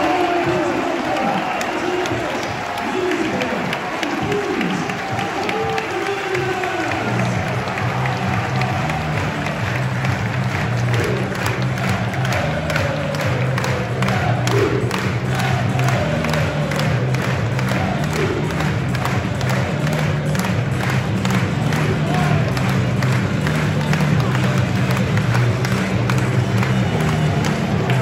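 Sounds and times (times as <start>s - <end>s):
crowd cheering and clapping: 0.0s - 28.0s
music over loudspeakers: 0.0s - 28.0s.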